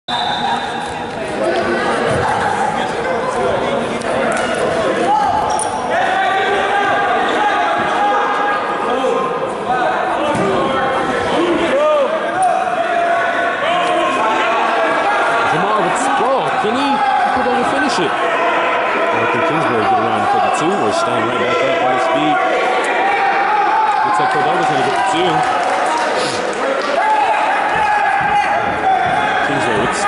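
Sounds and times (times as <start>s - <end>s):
voices in a large gym: 0.1s - 30.0s.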